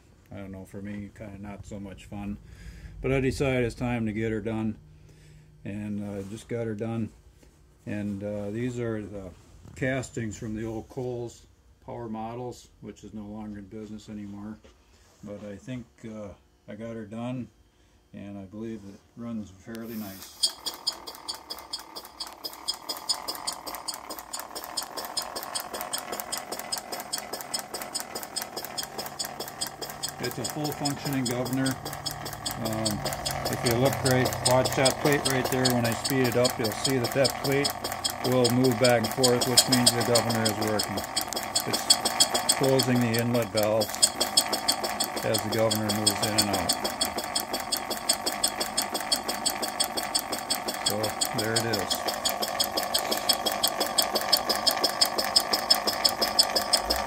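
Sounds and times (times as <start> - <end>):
model steam engine running: 19.9 - 57.0.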